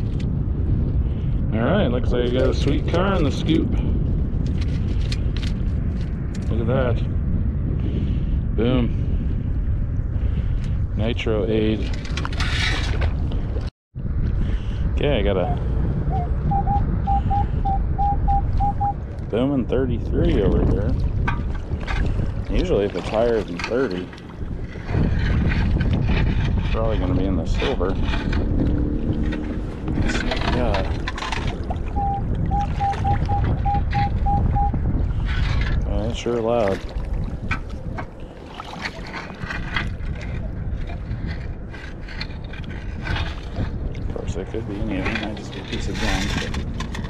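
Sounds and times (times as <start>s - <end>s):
wind rumble on microphone: 0.0s - 47.0s
metal detector beeps: 15.4s - 19.0s, 32.0s - 34.8s
water rushing: 28.6s - 33.4s
water moving around legs: 35.2s - 44.2s.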